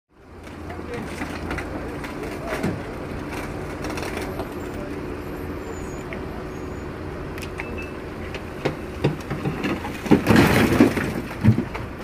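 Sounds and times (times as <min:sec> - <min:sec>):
traffic on wet road: 0:00.1 - 0:12.0.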